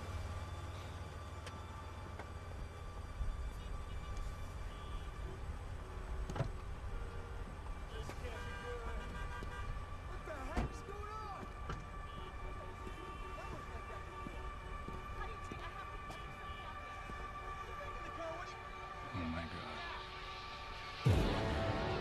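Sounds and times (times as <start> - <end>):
low traffic rumble: 0.0 - 22.0
car horns: 3.5 - 17.4.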